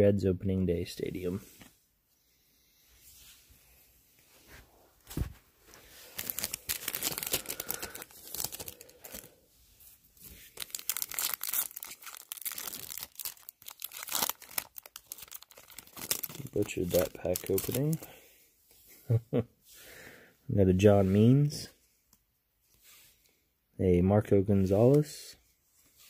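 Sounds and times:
foil wrapper crinkling: 0:06.0 - 0:09.3, 0:10.2 - 0:18.1.

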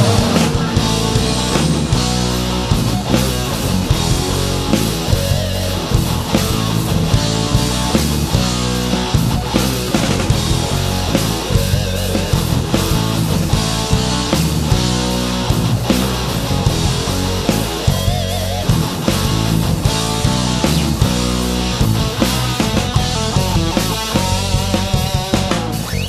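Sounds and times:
bass guitar: 0:00.0 - 0:26.0
drum kit: 0:00.0 - 0:26.0
electric guitar: 0:00.0 - 0:26.0.

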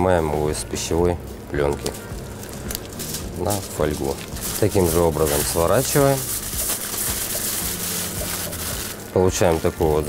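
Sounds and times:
aluminium foil crinkling: 0:01.7 - 0:10.0.

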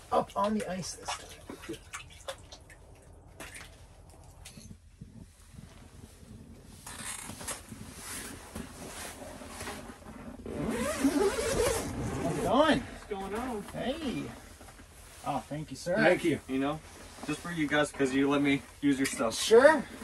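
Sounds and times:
nylon jacket and fabric rustling: 0:05.0 - 0:20.0.

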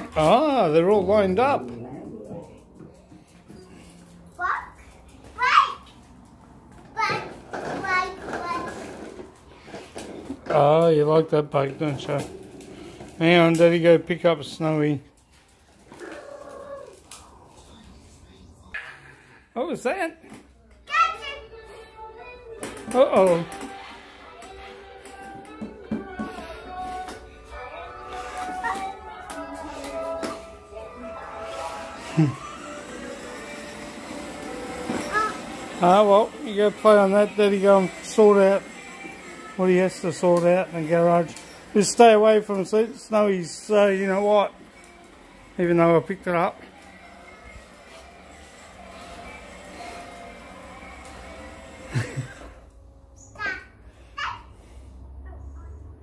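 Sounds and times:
plastic wheels rolling on concrete: 0:00.0 - 0:18.4, 0:19.8 - 0:52.8
toy car electric motors: 0:07.0 - 0:14.8, 0:15.4 - 0:17.4, 0:22.6 - 0:27.3, 0:31.1 - 0:52.8.

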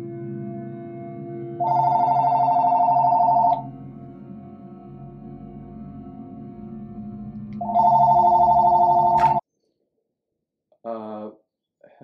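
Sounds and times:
low background music: 0:00.0 - 0:09.4
electronic two-tone phone ring: 0:01.6 - 0:03.6, 0:07.6 - 0:09.4.

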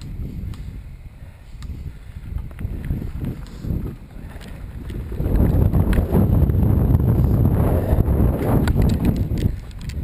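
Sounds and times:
bike clicks and rattles: 0:00.0 - 0:10.0
wind rush on microphone: 0:00.0 - 0:10.0.

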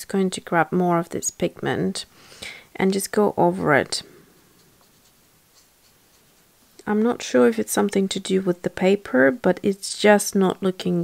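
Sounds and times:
paint brush scratching on paper: 0:04.0 - 0:06.8.

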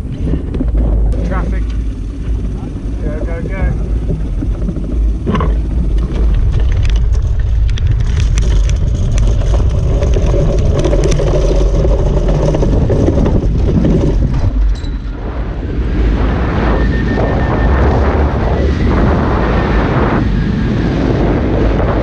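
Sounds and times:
cart rattling over rough dirt: 0:00.0 - 0:15.2
plane engine at full power: 0:00.0 - 0:22.0
wind rushing over microphone: 0:00.0 - 0:22.0.

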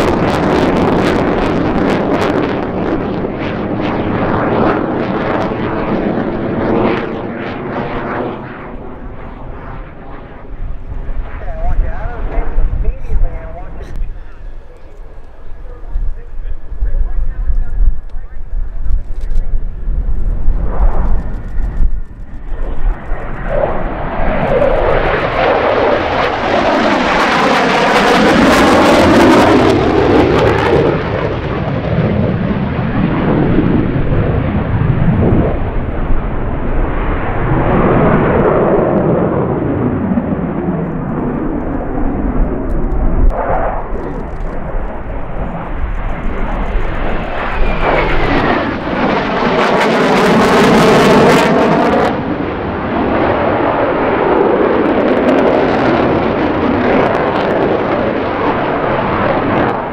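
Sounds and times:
fighter jet engine noise: 0:00.0 - 0:59.9.

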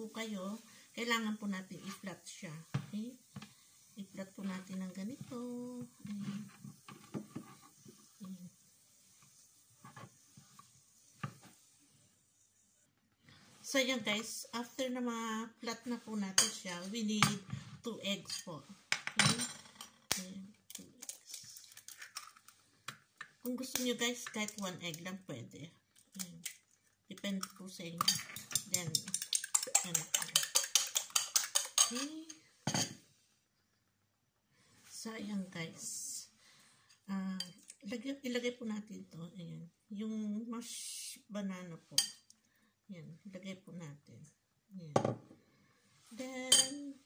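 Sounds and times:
whisk clicking against bowl: 0:28.2 - 0:32.0.

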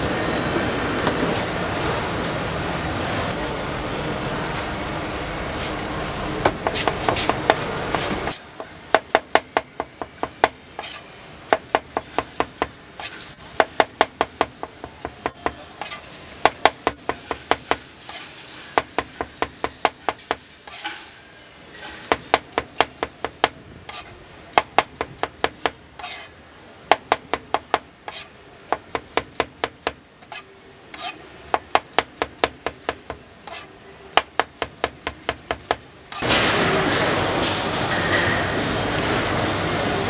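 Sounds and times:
knife scrape: 0:10.8 - 0:11.2, 0:13.0 - 0:13.4, 0:15.7 - 0:16.4, 0:17.1 - 0:18.8, 0:20.2 - 0:21.2, 0:23.9 - 0:24.2, 0:26.0 - 0:26.4, 0:28.1 - 0:28.4, 0:30.2 - 0:31.4, 0:33.4 - 0:33.8.

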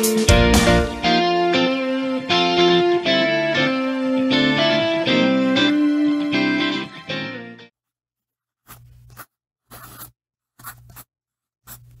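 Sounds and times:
pen scratching on paper: 0:08.6 - 0:12.0.

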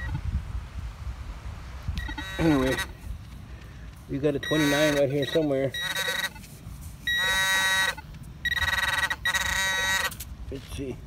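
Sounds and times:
metal detector beeping: 0:02.0 - 0:02.9, 0:04.2 - 0:06.4, 0:07.0 - 0:10.2.

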